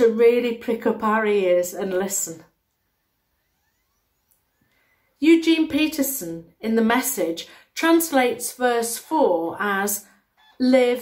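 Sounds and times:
faint rising whistles: 2.7 - 5.2.

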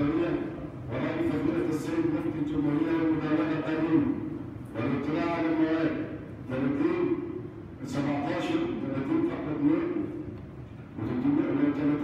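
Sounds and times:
man reading aloud: 0.0 - 10.4, 11.0 - 12.0.

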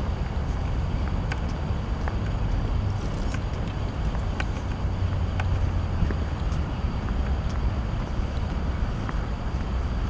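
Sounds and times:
low city rumble: 0.0 - 10.0
wind noise on microphone: 0.0 - 10.0.

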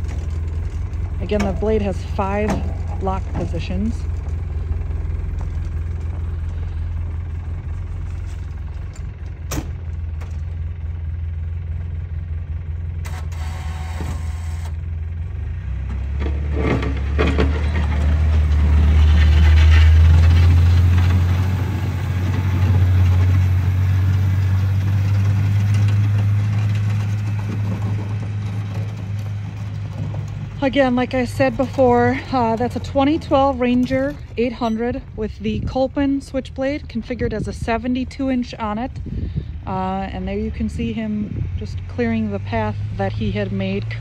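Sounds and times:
utility vehicle engine running: 0.0 - 44.0.

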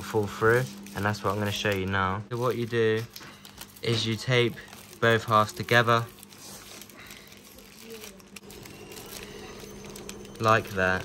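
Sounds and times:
tape crackling as peeled: 0.0 - 11.0.

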